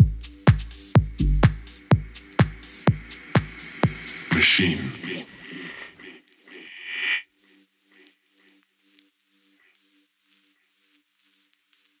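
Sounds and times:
synth swell: 0:01.8 - 0:07.2.

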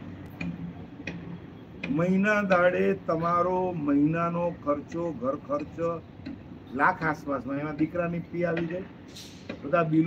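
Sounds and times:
regular ticking: 0:00.2 - 0:06.5.

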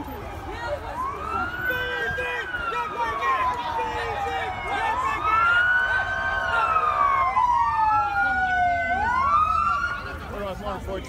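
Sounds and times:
police sirens wailing: 0:00.0 - 0:11.0.

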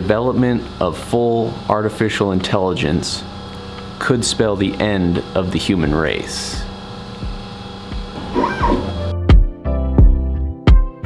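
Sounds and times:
steady machine hum: 0:00.0 - 0:09.1.

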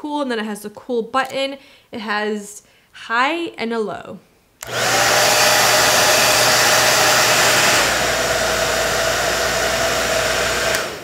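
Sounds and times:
hair dryer running: 0:04.6 - 0:11.0.

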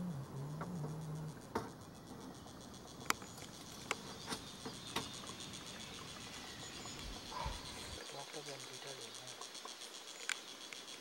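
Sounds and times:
insects chirring: 0:00.0 - 0:11.0.

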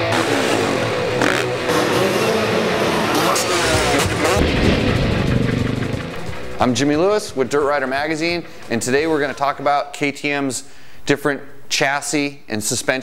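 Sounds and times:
dirt bike engine revving: 0:00.0 - 0:09.4
rock guitar music: 0:00.0 - 0:09.4.

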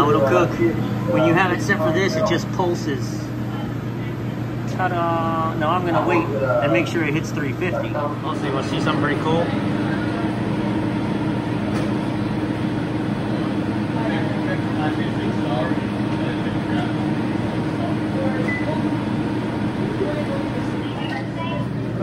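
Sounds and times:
faint voices: 0:00.0 - 0:12.1, 0:12.9 - 0:22.0
kitchen equipment humming: 0:00.0 - 0:22.0.

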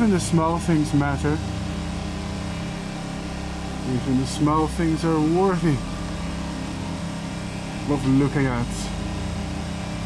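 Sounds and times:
small engine humming: 0:00.0 - 0:10.0.

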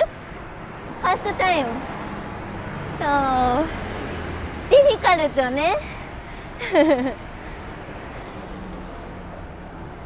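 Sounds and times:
traffic and road rumble: 0:00.0 - 0:10.0
woman's voice: 0:01.0 - 0:01.8, 0:03.0 - 0:03.8, 0:04.7 - 0:06.0.

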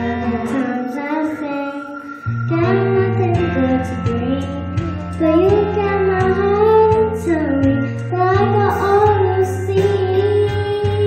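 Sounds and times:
girl singing into a microphone: 0:00.0 - 0:11.0
instrumental accompaniment: 0:00.0 - 0:11.0.

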